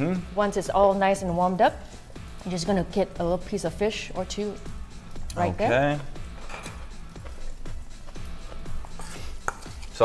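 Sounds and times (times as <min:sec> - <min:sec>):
soft background music: 0:00.0 - 0:10.0
utensils tapping on cutting board: 0:09.4 - 0:09.9.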